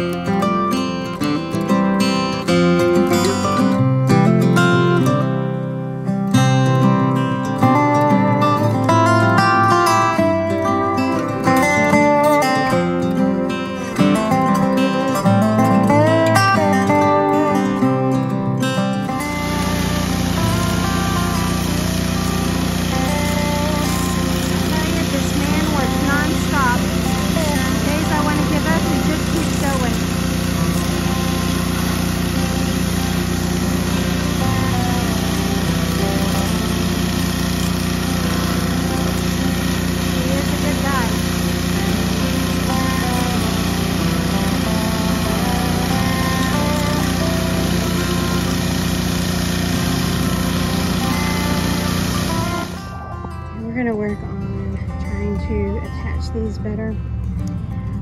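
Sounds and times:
pressure washer engine running: 0:00.0 - 0:56.8
music playing: 0:00.0 - 0:58.0
water spraying on wooden siding: 0:19.2 - 0:52.8.

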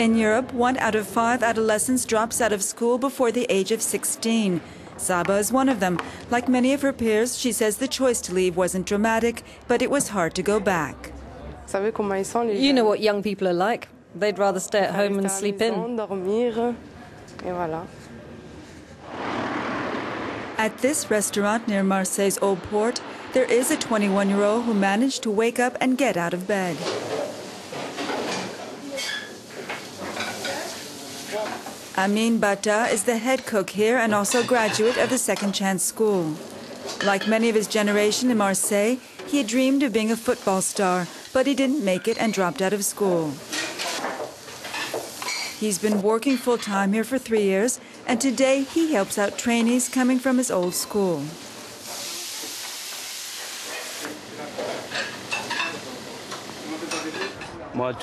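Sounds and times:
clatter of pans and utensils: 0:26.7 - 0:31.9, 0:33.3 - 0:35.6, 0:36.7 - 0:37.7, 0:41.8 - 0:42.7, 0:43.4 - 0:46.8, 0:53.4 - 0:57.5
food sizzling in pans: 0:26.8 - 0:35.3, 0:35.9 - 0:46.5, 0:48.1 - 0:57.2
pan flaring up hiss: 0:51.2 - 0:54.2.

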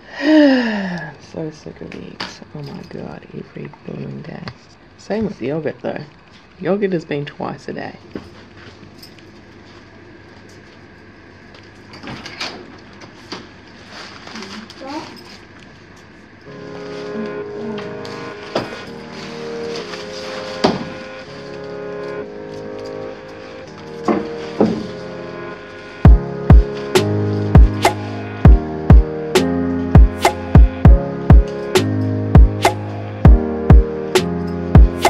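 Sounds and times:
background music: 0:16.5 - 0:35.0.

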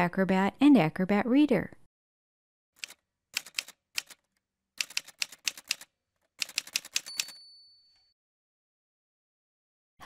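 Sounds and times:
typewriter keys clacking: 0:02.8 - 0:07.4.

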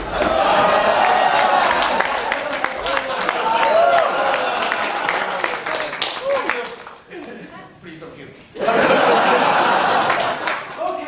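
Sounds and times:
audience clapping: 0:00.0 - 0:07.4, 0:09.3 - 0:11.0
audience laughing and cheering: 0:00.0 - 0:07.5, 0:08.6 - 0:11.0.

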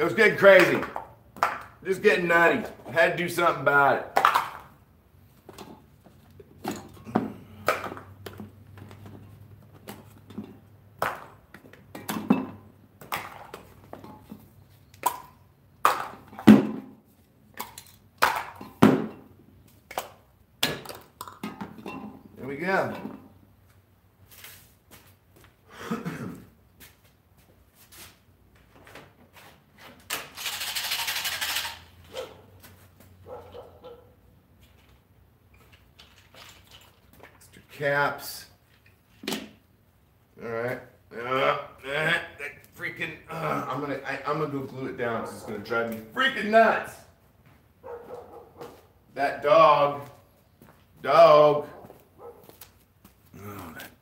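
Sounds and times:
spray cans knocking and clinking: 0:00.3 - 0:01.8, 0:03.6 - 0:04.8, 0:05.4 - 0:22.2, 0:30.0 - 0:32.0, 0:35.6 - 0:37.5
plastic caps handled: 0:30.0 - 0:32.1, 0:35.6 - 0:37.6.

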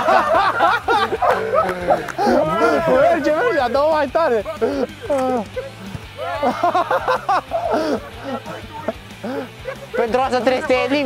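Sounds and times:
men laughing: 0:00.0 - 0:11.0.

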